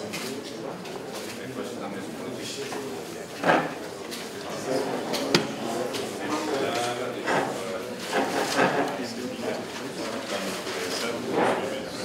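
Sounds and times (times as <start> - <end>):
murmur of voices in a room: 0.0 - 12.0.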